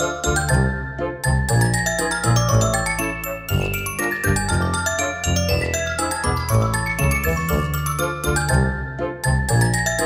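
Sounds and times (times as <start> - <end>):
bell-like mallet tune with bass: 0.0 - 10.0.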